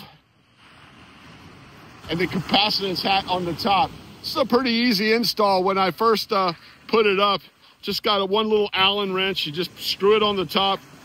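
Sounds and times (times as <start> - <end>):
ocean surf on beach: 0.0 - 11.0.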